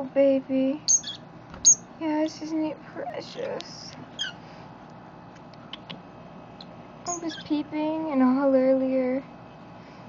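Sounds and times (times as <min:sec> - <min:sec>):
bird chick peeping: 0:00.9 - 0:01.9, 0:06.6 - 0:07.6.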